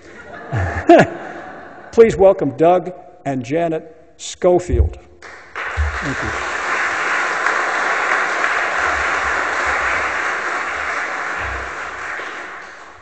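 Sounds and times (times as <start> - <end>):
audience applauding: 5.2 - 13.0.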